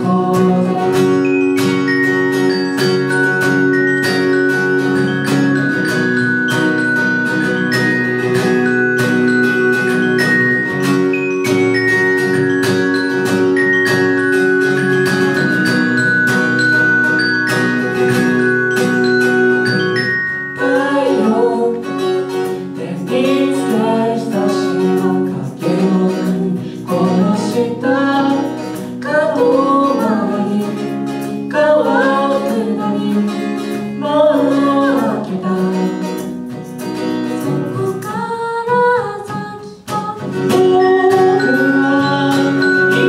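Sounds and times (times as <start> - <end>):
person singing: 0.0 - 2.0, 20.6 - 43.0
held keyboard chords: 0.0 - 37.9
strummed acoustic guitar: 0.0 - 43.0.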